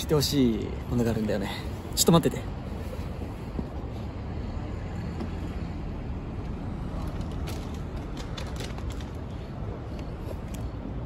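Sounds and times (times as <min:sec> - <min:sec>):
distant road traffic rumble: 0:00.0 - 0:11.0.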